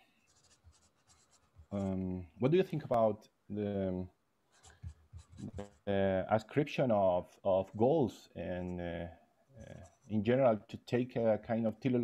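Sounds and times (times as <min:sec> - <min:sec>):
man speaking: 0:01.7 - 0:04.1, 0:05.4 - 0:12.0
faint mouth sounds: 0:04.7 - 0:05.9.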